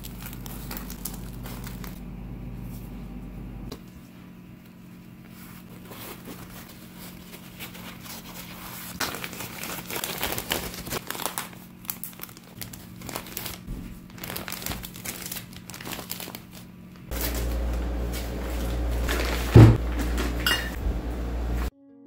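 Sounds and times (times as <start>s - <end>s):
paper towels rustling: 0.0s - 2.0s, 4.0s - 21.7s
plastic bag crinkling: 0.0s - 2.0s, 6.0s - 20.3s.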